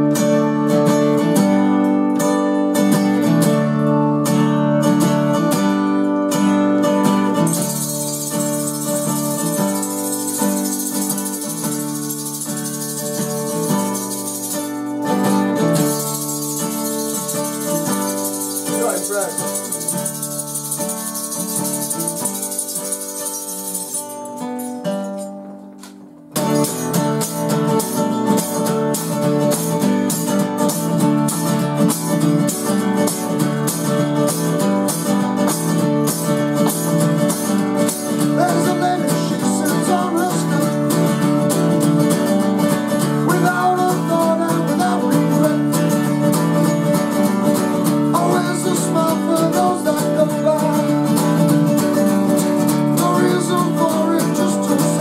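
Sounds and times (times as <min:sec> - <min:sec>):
acoustic guitar strumming: 0:00.0 - 0:55.0
man singing: 0:17.8 - 0:22.2, 0:38.3 - 0:41.4, 0:43.2 - 0:46.9, 0:48.1 - 0:51.4, 0:52.8 - 0:55.0.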